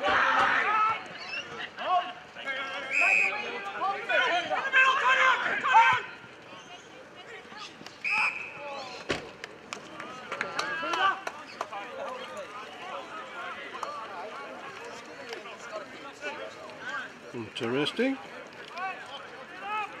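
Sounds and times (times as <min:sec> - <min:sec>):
players shouting: 0:00.0 - 0:09.1, 0:09.8 - 0:20.0
umpire's whistle blasts: 0:02.9 - 0:03.4.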